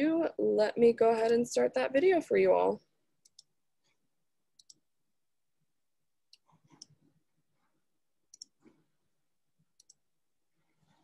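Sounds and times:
computer mouse clicks: 3.2s - 3.5s, 4.6s - 4.8s, 6.3s - 7.0s, 8.3s - 8.8s, 9.7s - 10.0s.

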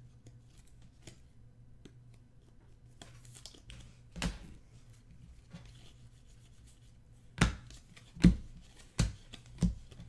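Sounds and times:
cards tapping on tabletop: 7.4s - 10.0s.

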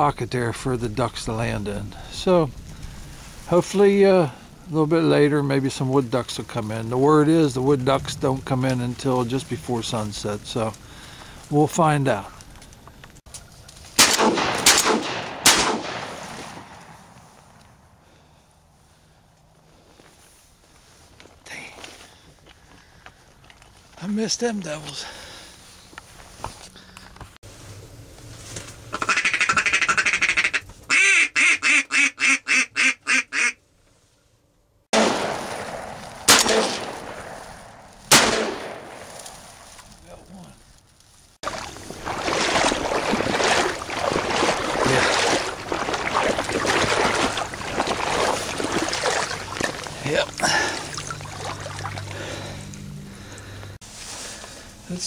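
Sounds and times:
shotgun shots echoing: 14.0s - 17.0s, 35.0s - 39.4s
duck quacks: 28.9s - 33.6s.

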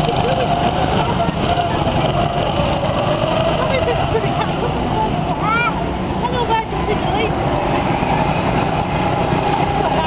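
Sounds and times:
go-kart engines droning: 0.0s - 10.0s
people speaking: 0.1s - 2.6s, 3.5s - 7.4s, 9.7s - 10.0s.

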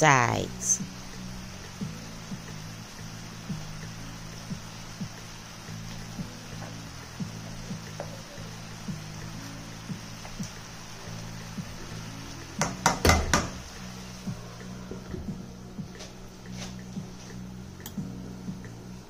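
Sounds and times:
soft background music: 0.0s - 19.0s
light ticks: 17.8s - 18.0s.

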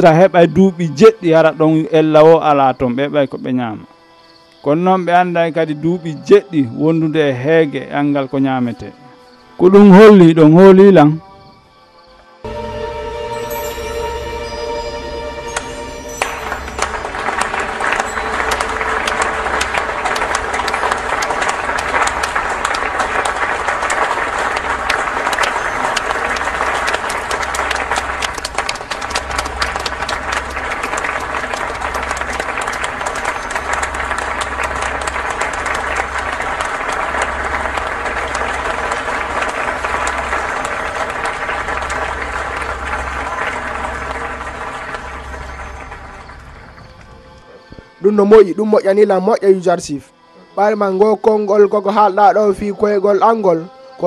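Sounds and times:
music with low pulse: 0.0s - 54.0s
crackling clatter: 16.8s - 47.5s.

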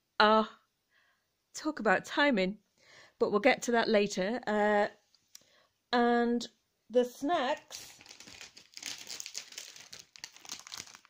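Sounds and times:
plastic snack bag crinkling: 7.6s - 11.0s.

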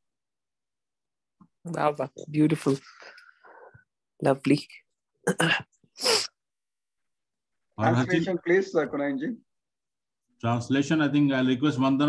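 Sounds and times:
hissing puff of breath: 6.0s - 6.4s.

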